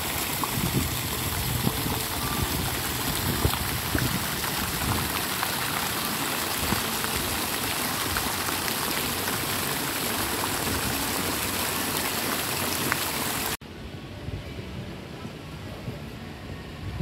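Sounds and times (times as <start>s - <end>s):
fountain water splashing: 0.0s - 13.6s.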